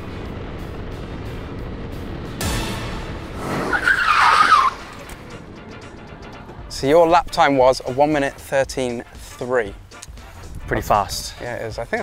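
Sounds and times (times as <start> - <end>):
go-kart engine at speed: 0.0 - 5.3
tyre squeal: 3.4 - 5.0.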